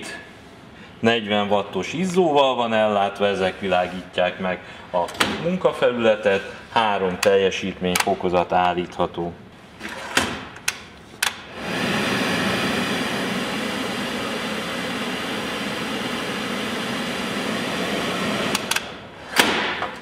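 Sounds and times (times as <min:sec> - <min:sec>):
extractor fan rushing: 0:11.5 - 0:18.9.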